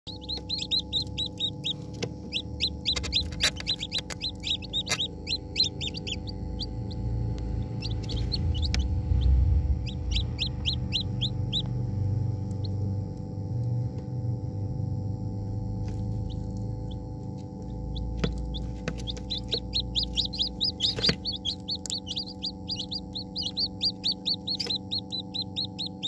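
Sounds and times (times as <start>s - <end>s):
steady machine hum: 0.0s - 26.0s
chicks peeping: 0.1s - 12.8s, 15.8s - 26.0s.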